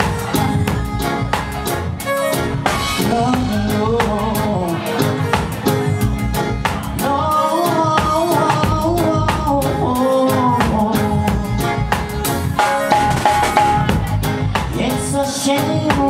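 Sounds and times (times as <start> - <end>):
drum kit beat: 0.0 - 16.0
live band playing: 0.0 - 16.0
man singing into a microphone: 3.0 - 12.6, 13.8 - 16.0.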